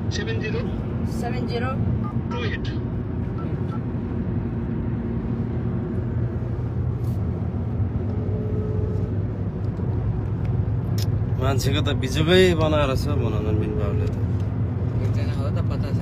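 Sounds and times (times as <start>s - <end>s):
car engine and road noise: 0.0s - 16.0s.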